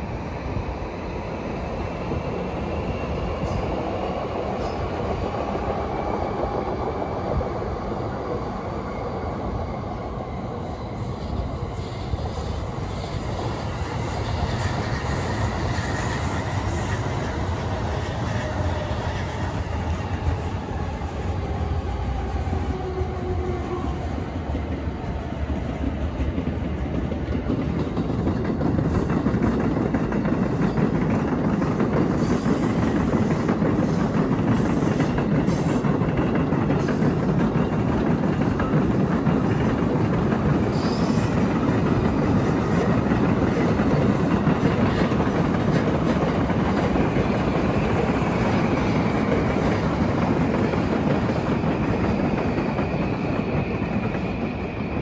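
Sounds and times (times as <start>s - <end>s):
trains rumbling on tracks: 0.0s - 55.0s.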